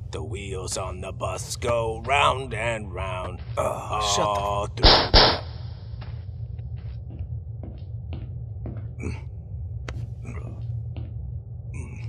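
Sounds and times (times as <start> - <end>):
low steady rumble: 0.0 - 12.0
loud sharp gunshot: 4.8 - 5.5.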